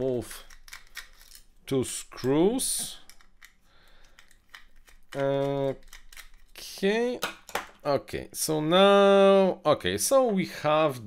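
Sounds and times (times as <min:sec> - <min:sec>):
screwdriver clicking and scraping: 0:00.3 - 0:01.5, 0:03.0 - 0:06.6.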